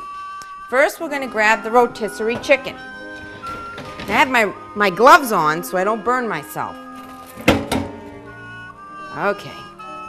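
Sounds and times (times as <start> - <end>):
soft background music: 0.0 - 10.0
metal spit clunking on oven: 2.2 - 4.4, 7.4 - 8.1.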